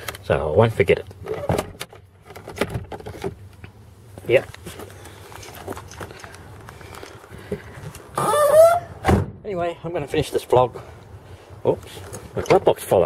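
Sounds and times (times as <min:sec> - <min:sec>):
glove box clicks and rustles: 0:01.0 - 0:08.2
car door hinges creaking: 0:08.0 - 0:09.4.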